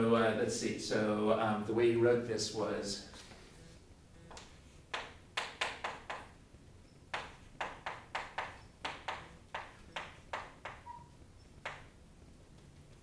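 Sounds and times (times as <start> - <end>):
chalk tapping on chalkboard: 4.3 - 6.4, 7.1 - 11.0, 11.6 - 11.9.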